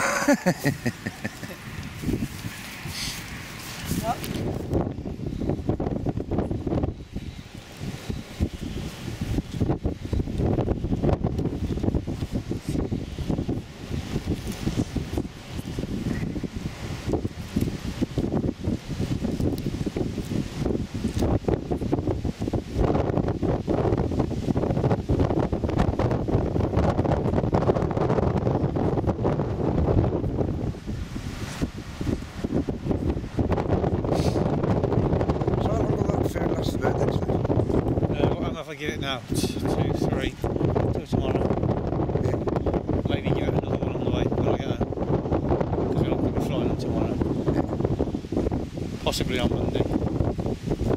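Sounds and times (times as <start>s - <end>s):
wind buffeting microphone: 0.0s - 50.9s.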